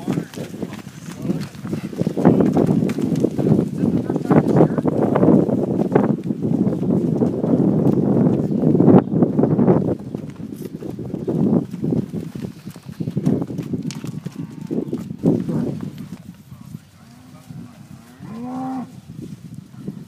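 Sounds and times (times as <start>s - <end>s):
cows mooing: 14.1s - 15.0s, 17.0s - 19.0s.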